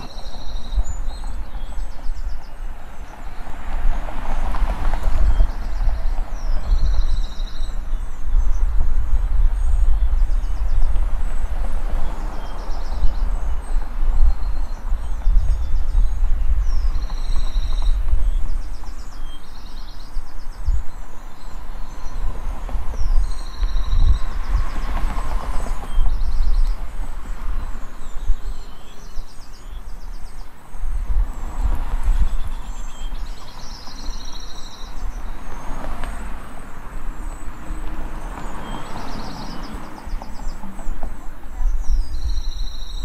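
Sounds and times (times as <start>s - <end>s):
birds chirping trills: 4.9s - 43.0s.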